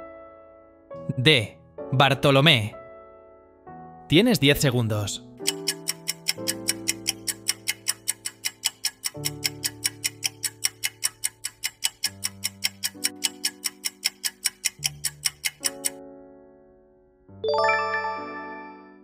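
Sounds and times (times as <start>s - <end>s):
countdown timer clock ticking: 5.4s - 16.0s.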